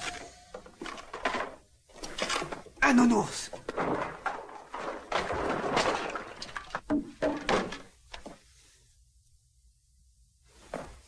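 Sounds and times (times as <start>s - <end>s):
rustling and clattering: 0.0s - 8.8s, 10.5s - 11.0s
knocks and thuds: 3.6s - 8.4s.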